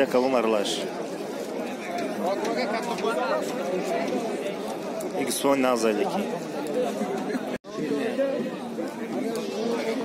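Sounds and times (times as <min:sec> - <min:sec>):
background chatter: 0:00.0 - 0:10.0.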